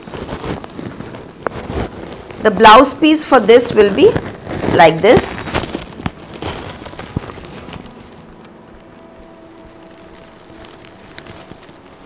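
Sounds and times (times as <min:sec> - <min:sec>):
silk fabric rustling: 0:00.0 - 0:12.0.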